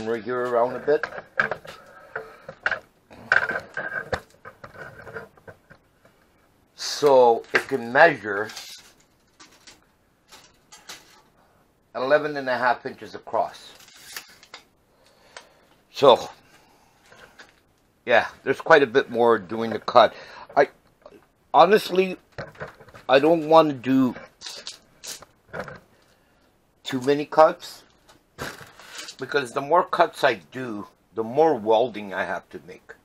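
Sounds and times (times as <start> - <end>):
man speaking: 0.0 - 1.1, 6.8 - 8.6, 12.0 - 13.8, 15.9 - 16.4, 18.1 - 22.2, 23.1 - 24.7, 26.8 - 27.9, 29.2 - 33.0
tape measure ticks and rustles: 24.4 - 25.3, 27.9 - 29.3.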